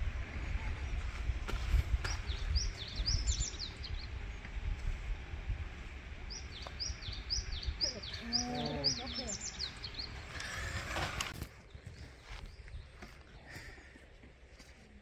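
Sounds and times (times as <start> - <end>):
bird chirping: 2.0 - 4.4, 6.2 - 13.5.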